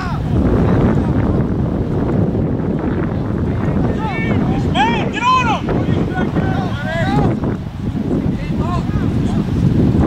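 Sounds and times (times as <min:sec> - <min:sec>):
distant voices shouting: 0:00.0 - 0:00.4, 0:03.1 - 0:09.6
wind buffeting microphone: 0:00.0 - 0:10.0.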